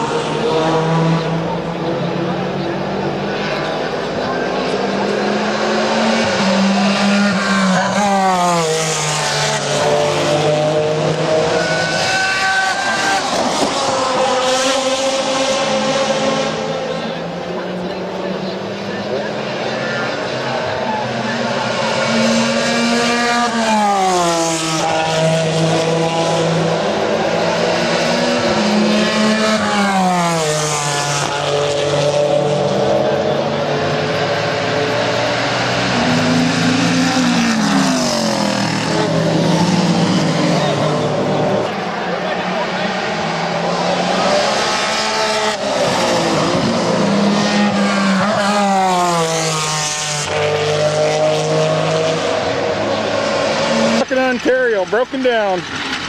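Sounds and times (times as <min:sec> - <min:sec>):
racing car engines: 0:00.0 - 0:56.0.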